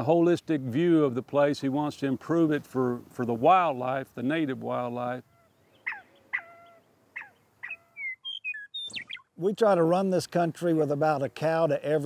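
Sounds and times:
quail calling: 5.2s - 9.4s
short whistled chirps: 7.7s - 9.2s.

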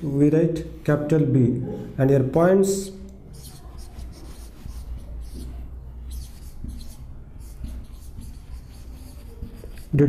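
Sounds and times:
marker scratching on whiteboard: 2.8s - 10.0s.

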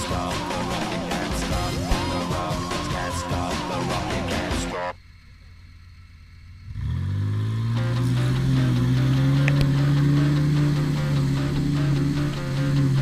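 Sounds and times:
rock music with a beat: 0.0s - 4.8s, 8.0s - 13.0s
off-road engine revving: 6.6s - 13.0s
vehicle driving through mud and water: 6.7s - 13.0s.

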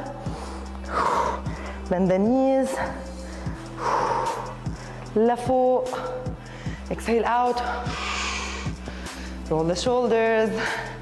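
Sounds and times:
background music: 0.0s - 11.0s
woman breathing: 0.1s - 1.9s, 2.7s - 5.2s, 5.9s - 6.9s, 7.6s - 9.5s, 10.5s - 11.0s.

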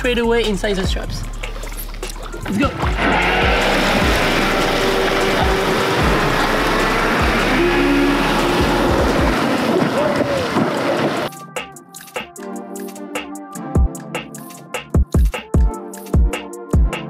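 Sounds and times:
background music with beat: 0.0s - 17.0s
rushing water and spray: 1.4s - 11.3s.

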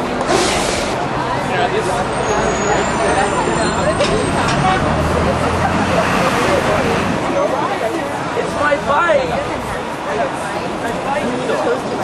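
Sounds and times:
passers-by talking: 0.0s - 12.0s
road traffic: 0.0s - 12.0s.

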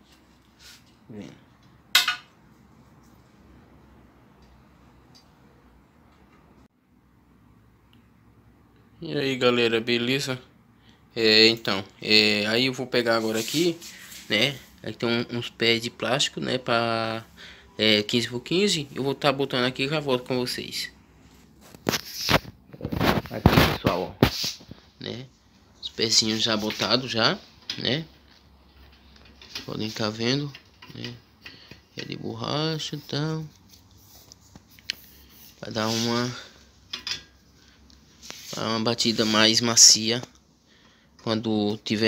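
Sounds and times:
phone handling rustles and scrapes: 21.2s - 24.9s.

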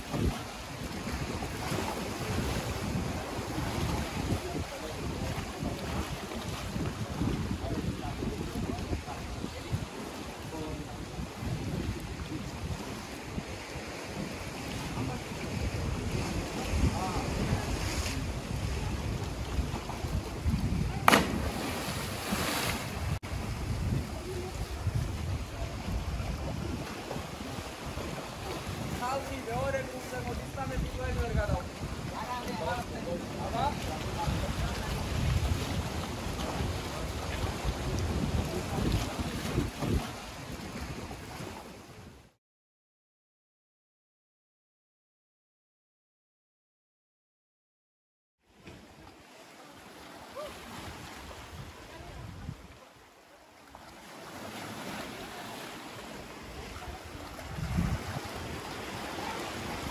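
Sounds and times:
sea waves washing on rocks: 0.0s - 41.8s, 53.6s - 59.9s
wind buffeting microphone: 0.0s - 42.2s, 50.8s - 52.8s, 56.3s - 59.9s.

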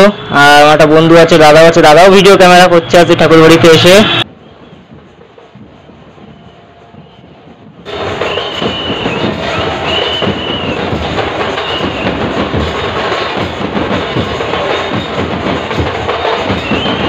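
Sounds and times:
crowd drumming: 3.8s - 17.0s
metal percussion clashing: 7.7s - 17.0s.

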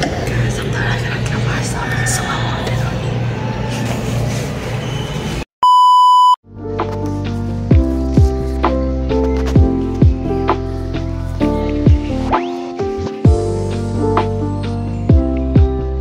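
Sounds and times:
censor bleep: 5.6s - 6.4s
light background music: 6.5s - 16.0s.

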